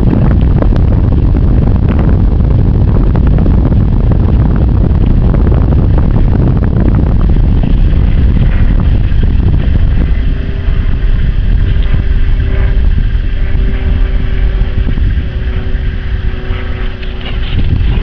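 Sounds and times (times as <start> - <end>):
faint steady hum: 0.0 - 18.0
wind buffeting microphone: 0.0 - 18.0.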